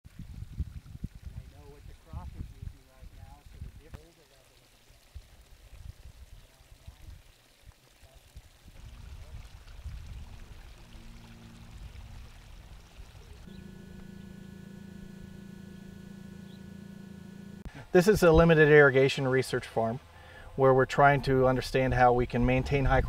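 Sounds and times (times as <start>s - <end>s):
water pouring from pipe: 0.1s - 13.5s
steady mechanical hum: 10.0s - 18.5s.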